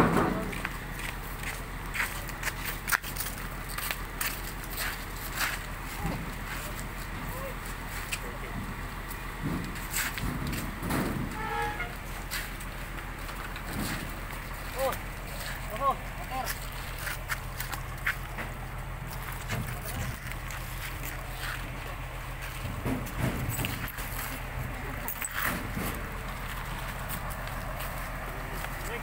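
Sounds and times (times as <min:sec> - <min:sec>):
knocks and clatter: 0:00.0 - 0:04.6, 0:08.5 - 0:15.7, 0:16.5 - 0:28.8
steady low hum: 0:00.0 - 0:29.0
people talking in background: 0:19.1 - 0:29.0.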